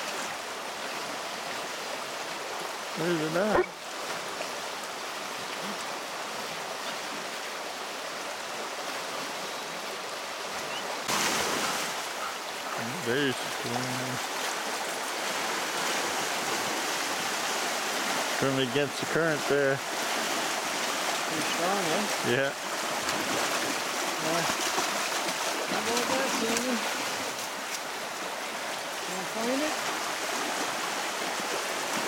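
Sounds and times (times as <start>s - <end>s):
river rushing over rocks: 0.0s - 32.0s
dog wading through water: 10.7s - 18.4s, 19.8s - 32.0s.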